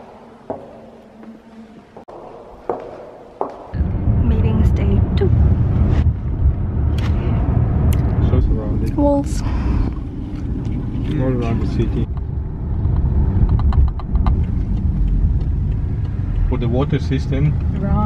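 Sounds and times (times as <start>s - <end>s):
car road rumble: 3.4s - 18.0s
voices: 16.4s - 18.0s.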